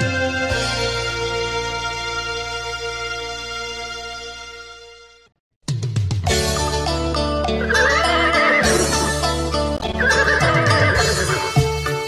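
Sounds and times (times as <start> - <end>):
band music: 6.3 - 12.0
horse whinny: 7.5 - 11.6.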